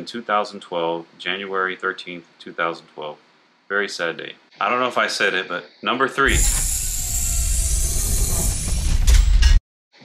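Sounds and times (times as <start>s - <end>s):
hissing rush: 6.2s - 9.1s
deep rumble: 6.3s - 9.5s.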